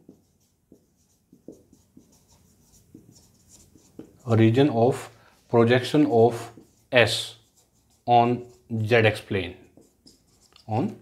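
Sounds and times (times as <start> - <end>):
marker pen writing on whiteboard: 0.0 - 11.0.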